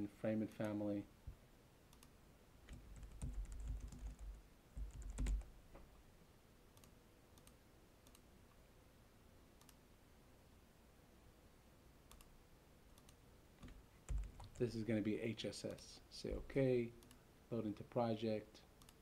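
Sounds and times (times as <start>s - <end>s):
mouse clicks: 1.9s - 2.1s, 6.8s - 8.2s, 12.1s - 12.3s, 18.8s - 19.0s
typing on computer keyboard: 2.7s - 5.5s, 13.0s - 14.6s.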